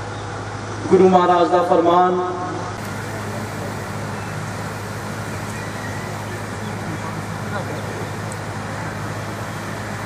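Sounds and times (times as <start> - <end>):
constant low hum: 0.0 - 10.0
man speaking over microphone: 0.8 - 2.8.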